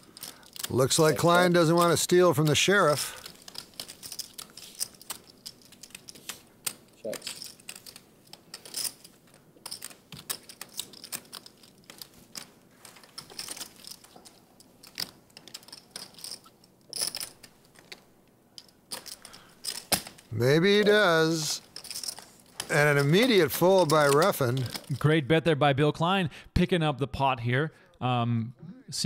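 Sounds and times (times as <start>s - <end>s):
person speaking: 0.6s - 3.4s, 6.3s - 7.5s, 20.3s - 21.7s, 22.6s - 26.0s.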